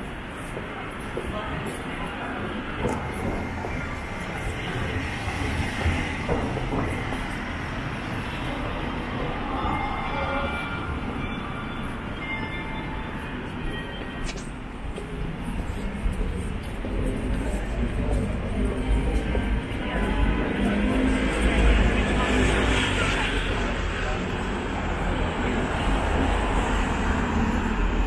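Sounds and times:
city traffic rumble: 0.0s - 28.0s.

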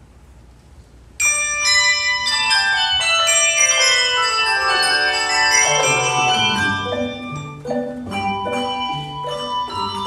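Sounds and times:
handbells playing ragtime: 1.2s - 10.0s.

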